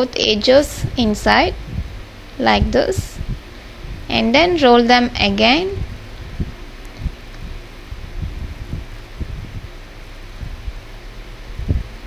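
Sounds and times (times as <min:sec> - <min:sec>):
soft low bumps: 0:00.4 - 0:12.0.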